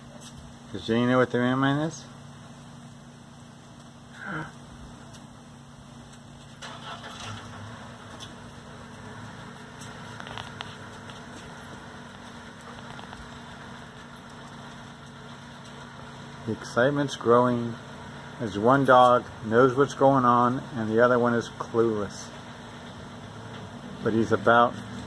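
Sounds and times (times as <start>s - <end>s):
vehicle engine idling: 0.0s - 25.0s.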